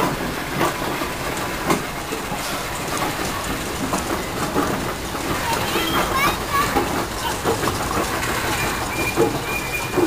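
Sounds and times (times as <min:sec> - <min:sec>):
steam engine clattering: 0:00.0 - 0:10.0.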